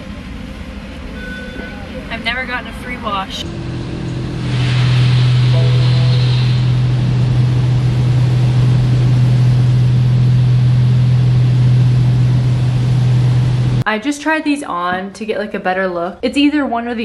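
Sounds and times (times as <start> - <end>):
low hum of wash machinery: 0.0 - 14.0.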